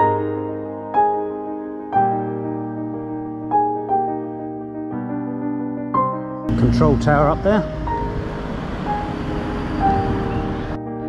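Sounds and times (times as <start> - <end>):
slow background music: 0.0 - 11.0.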